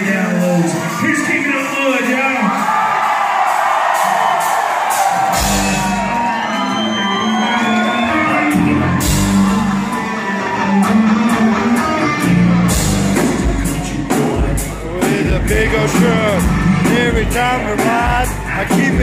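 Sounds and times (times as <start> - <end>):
live rock band: 0.0 - 19.0
crowd shouting and whooping: 0.2 - 19.0.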